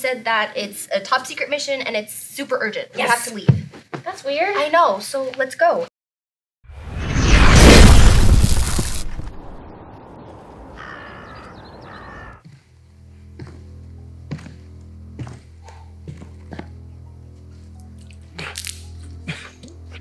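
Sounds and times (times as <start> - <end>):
rushing noise: 6.7 - 10.8
crows cawing: 10.6 - 12.4
low droning music: 12.8 - 20.0.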